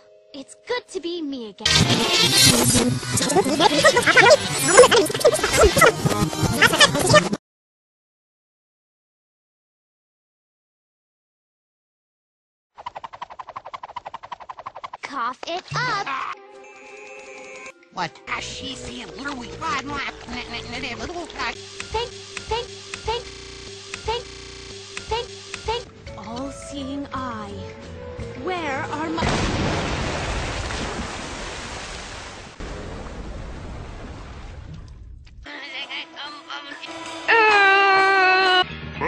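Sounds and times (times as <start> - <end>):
cartoon electric shock buzzing: 1.6 - 5.9, 20.3 - 25.9
cartoon rushing noise: 1.7 - 6.0.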